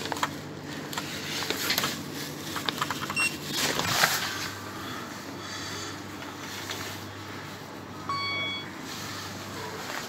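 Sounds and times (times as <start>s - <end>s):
short electronic beep: 8.1s - 8.7s.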